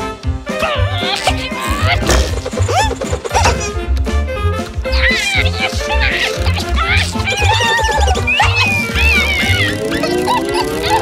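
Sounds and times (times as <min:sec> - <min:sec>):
cartoon background music: 0:00.0 - 0:11.0
squeaky meow-like vocal noises: 0:00.5 - 0:02.1, 0:04.9 - 0:11.0.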